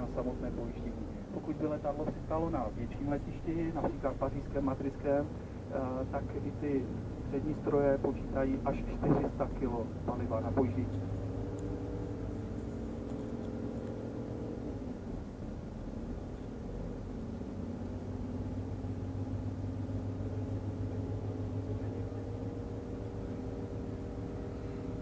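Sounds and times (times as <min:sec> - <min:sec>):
bus engine running: 0:00.0 - 0:25.0
road noise inside bus: 0:00.0 - 0:25.0.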